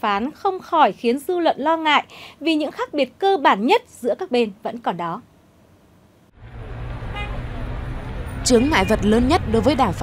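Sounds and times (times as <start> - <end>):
car engines rumbling: 6.3 - 10.0
car horn toot: 7.0 - 7.6.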